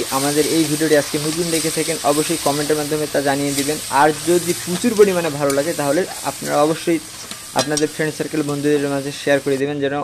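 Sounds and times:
person talking: 0.0s - 7.0s, 7.6s - 10.0s
onions sizzling in oil: 0.0s - 9.7s.

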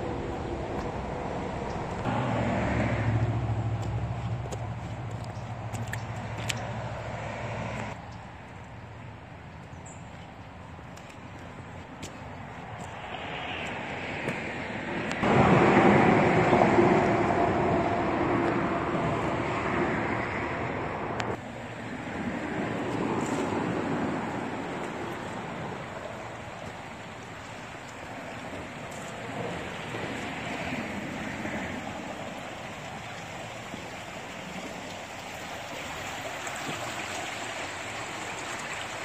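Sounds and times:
highway traffic rush: 0.0s - 39.0s
vehicle passing over: 1.1s - 4.7s, 13.0s - 21.4s.

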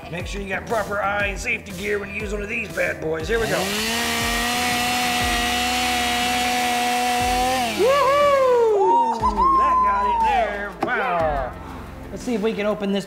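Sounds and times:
chainsaw cutting metal: 3.4s - 8.4s.

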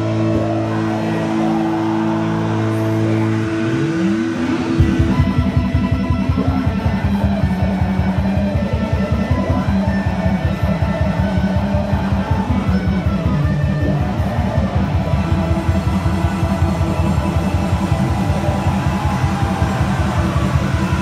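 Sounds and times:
electric guitar chords: 0.0s - 21.0s
fast pulsing beat: 4.7s - 21.0s.

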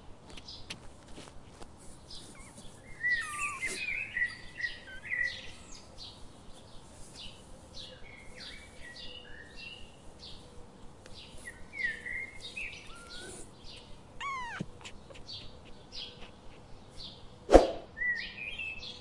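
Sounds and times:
small birds chirping: 0.2s - 19.0s.

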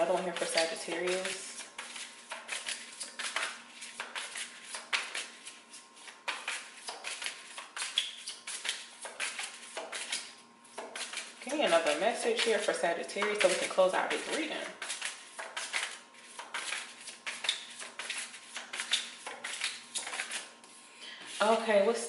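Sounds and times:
cards being shuffled: 0.2s - 20.5s.

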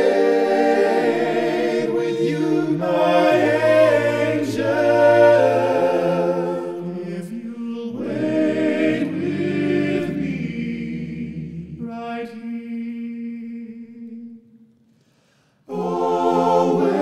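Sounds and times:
a cappella choir singing: 0.0s - 14.7s, 15.5s - 17.0s.

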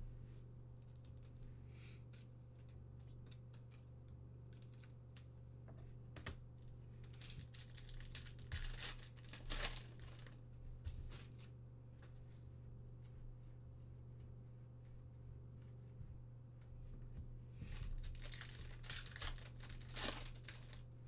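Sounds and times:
faint steady hum: 0.0s - 21.0s
foil wrapper crinkling: 7.0s - 10.4s, 11.0s - 11.5s, 17.8s - 21.0s.

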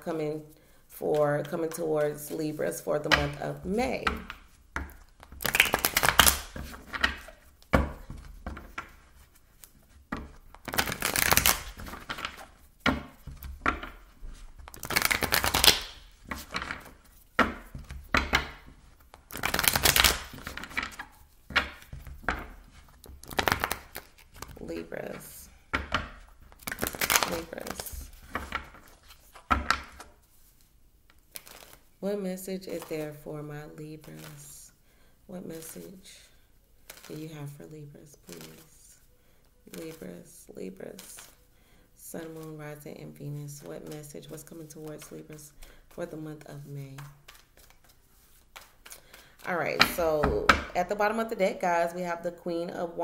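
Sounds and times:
cards being riffle-shuffled on wood: 3.1s - 31.9s, 36.8s - 37.3s, 40.9s - 41.4s, 43.8s - 46.0s, 46.6s - 50.6s.

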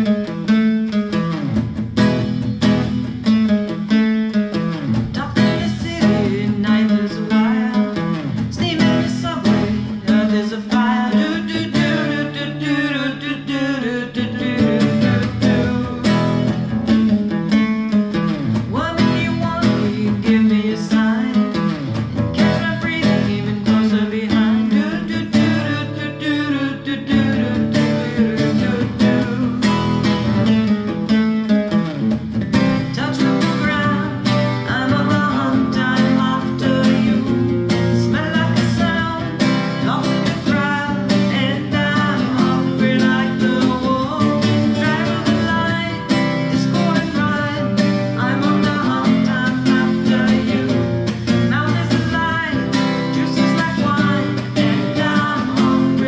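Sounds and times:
acoustic guitar strumming: 0.0s - 56.0s
woman and man singing: 5.0s - 17.0s, 18.5s - 30.6s, 32.5s - 56.0s.

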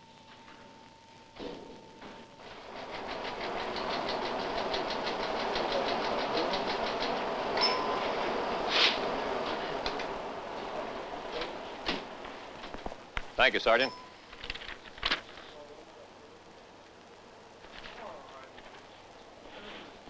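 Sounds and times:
teleprinter clattering: 2.4s - 15.4s
short ringing tone: 7.6s - 8.2s, 13.8s - 14.2s.

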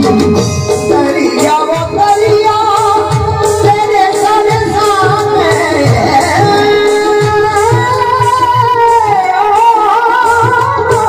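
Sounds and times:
dholak drum beats: 0.0s - 11.0s
harmonium drone: 0.0s - 11.0s.

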